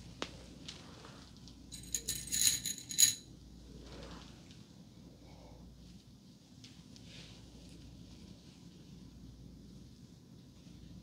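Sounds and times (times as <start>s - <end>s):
small metal items jingling: 1.7s - 3.2s.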